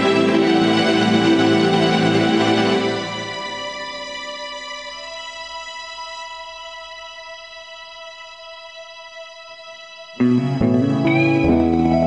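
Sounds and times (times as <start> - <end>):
sustained keyboard chord: 10.2 - 12.0.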